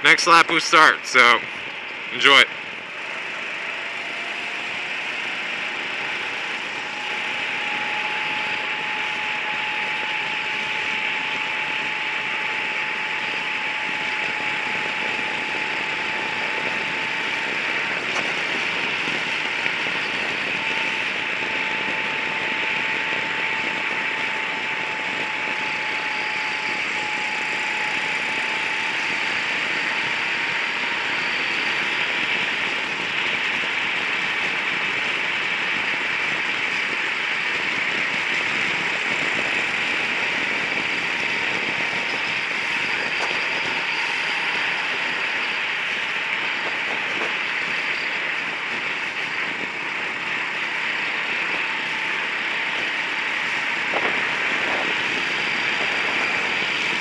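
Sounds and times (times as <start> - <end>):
wind noise over microphone: 1.4 - 57.0.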